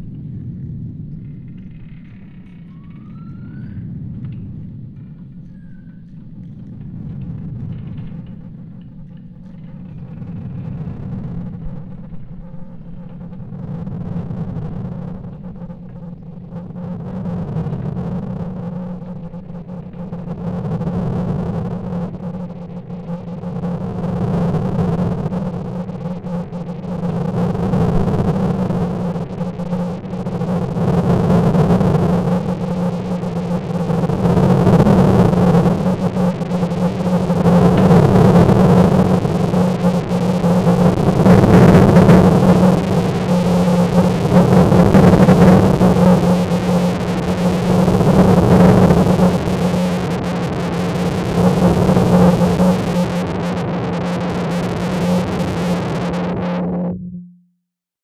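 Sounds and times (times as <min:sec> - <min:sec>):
pulsing low drone: 0:00.0 - 0:57.6
noisy hiss: 0:10.4 - 0:56.9.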